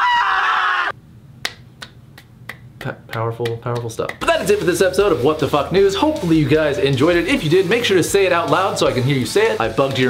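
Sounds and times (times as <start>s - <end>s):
fingers snapping: 1.4s - 4.2s.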